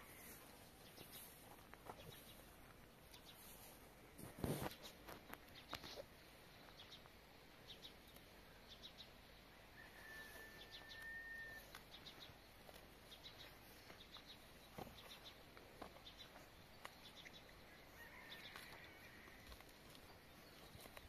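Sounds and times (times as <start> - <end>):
small birds chirping: 0.0 - 9.4, 10.3 - 21.0.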